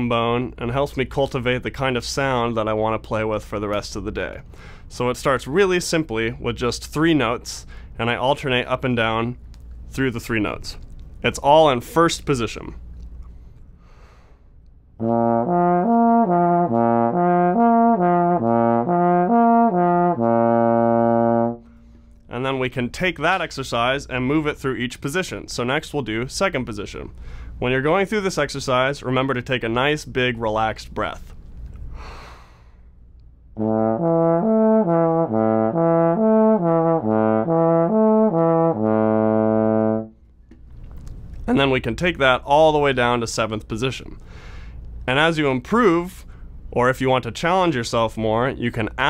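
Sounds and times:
breath in: 4.5 - 4.9, 13.3 - 14.5, 31.9 - 32.9, 44.2 - 44.8.

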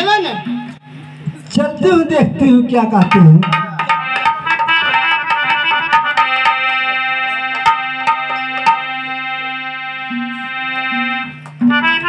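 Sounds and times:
harmonium notes: 2.6 - 12.0.

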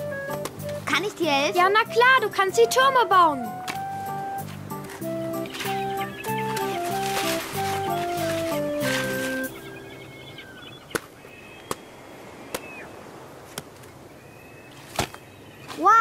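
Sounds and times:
cartoon music phrase: 0.0 - 9.7
toy shovel patting sand: 3.6 - 9.6.

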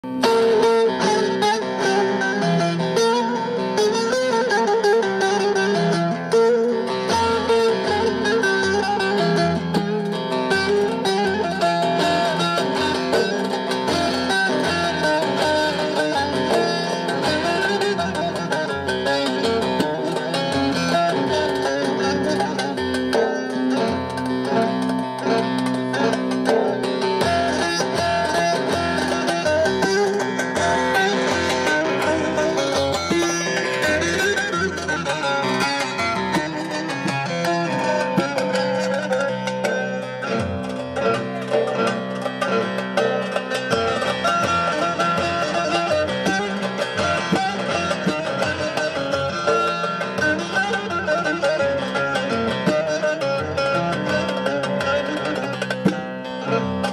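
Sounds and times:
plucked long-necked lute: 0.0 - 56.9.

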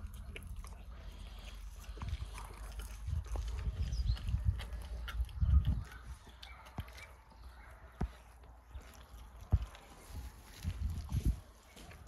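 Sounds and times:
cubs chewing and tearing meat: 0.0 - 12.0.

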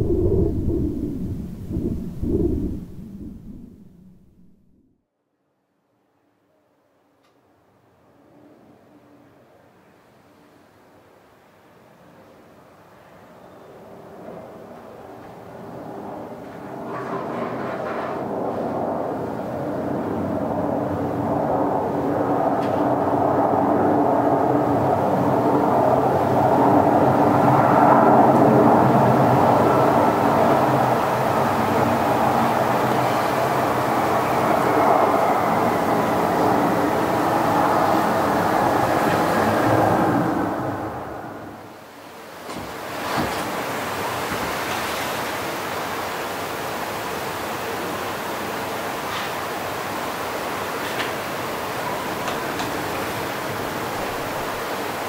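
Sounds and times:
rumbling noise drone with tones: 0.0 - 5.0, 15.3 - 41.9.

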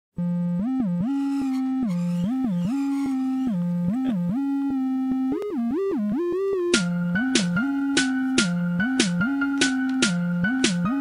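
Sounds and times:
theremin-like synth melody: 0.2 - 9.5.

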